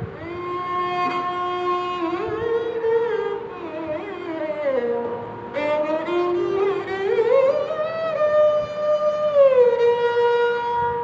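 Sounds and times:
sarangi bowed sustained note: 0.0s - 11.0s.

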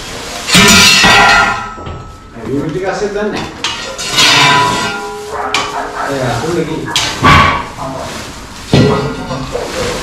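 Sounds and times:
objects clattering and rustling: 0.0s - 10.0s.

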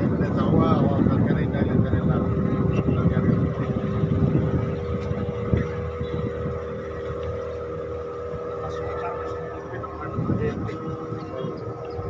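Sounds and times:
boat motor running: 0.0s - 12.0s
wind on microphone: 0.0s - 12.0s.

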